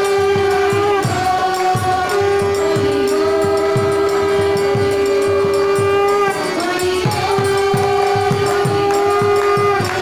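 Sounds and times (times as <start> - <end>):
harmonium holding chord: 0.0 - 10.0.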